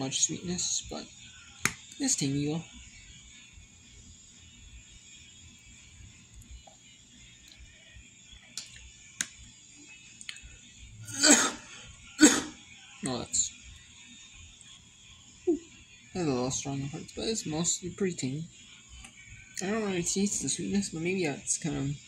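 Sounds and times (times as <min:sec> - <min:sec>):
man coughing: 0:11.1 - 0:12.5.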